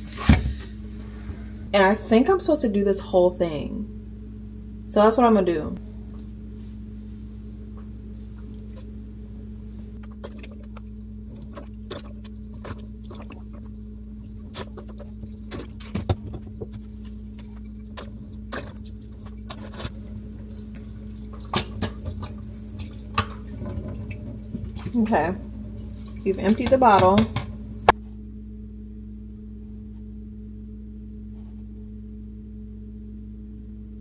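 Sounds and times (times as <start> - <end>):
drips splashing in metal sink: 10.0 - 27.9
liquid pouring over hair: 16.4 - 26.5.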